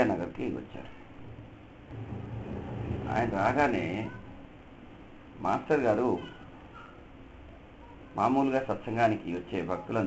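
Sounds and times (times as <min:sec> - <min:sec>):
low steady rumble: 0:01.1 - 0:05.6.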